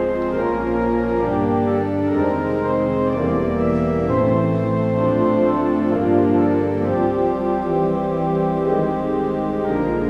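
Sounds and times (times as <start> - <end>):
church organ playing chords: 0.0 - 10.0.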